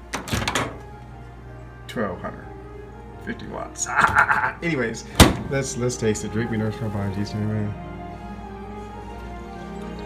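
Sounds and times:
microwave door latch clunk: 0:00.1 - 0:00.8, 0:05.2 - 0:05.5.

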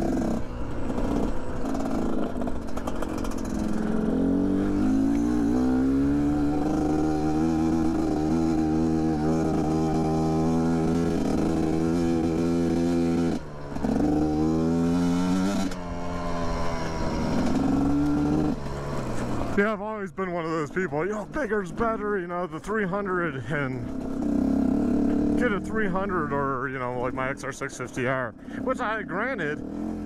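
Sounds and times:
motorcycle engine revving: 0:00.0 - 0:30.0.

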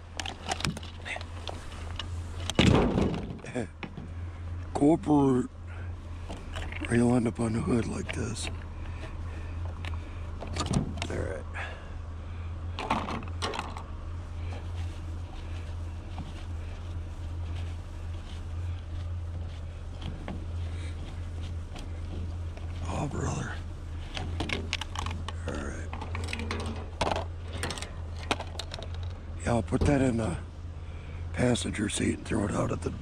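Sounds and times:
plastic fan parts clicking and rattling: 0:00.0 - 0:04.0, 0:06.3 - 0:11.2, 0:12.8 - 0:13.9, 0:24.0 - 0:29.2
steady low hum: 0:00.0 - 0:33.0.

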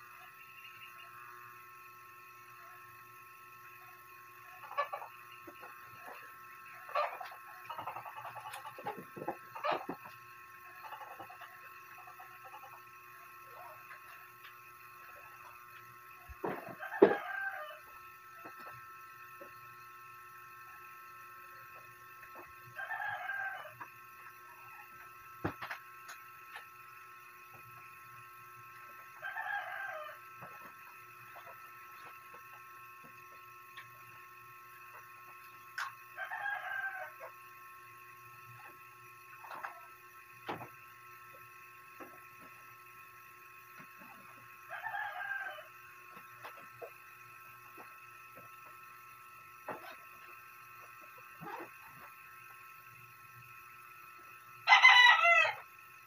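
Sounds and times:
rooster crowing: 0:16.4 - 0:18.0, 0:22.8 - 0:23.9, 0:29.2 - 0:30.3, 0:36.2 - 0:37.4, 0:44.7 - 0:45.8, 0:54.6 - 0:55.7.

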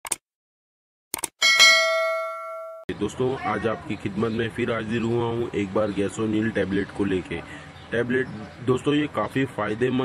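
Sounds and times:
notification bell ding: 0:01.4 - 0:02.9.

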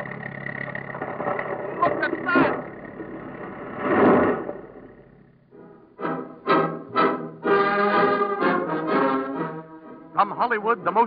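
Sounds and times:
barn crashing and collapsing: 0:00.0 - 0:05.3
tractor engine running: 0:00.0 - 0:07.0.

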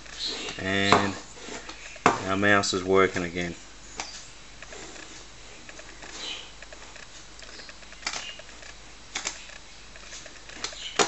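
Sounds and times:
low steady hum: 0:00.0 - 0:11.0
computer mouse clicks: 0:04.0 - 0:11.0.

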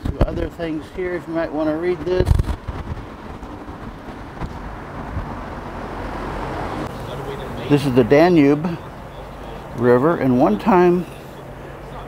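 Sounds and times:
low rumble: 0:01.7 - 0:06.9.

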